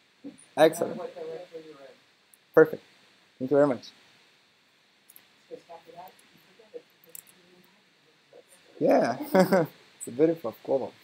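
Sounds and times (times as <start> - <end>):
faint distant voices: 5.2 - 11.0
person saying yeah: 8.8 - 9.5.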